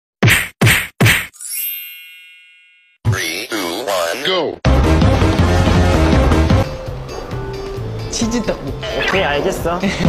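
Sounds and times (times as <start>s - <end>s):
sharp whacks: 0.2s - 1.3s.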